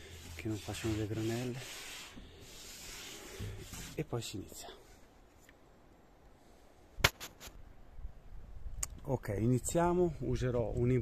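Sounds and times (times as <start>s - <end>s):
hand rubbing across wood: 0.0s - 5.5s.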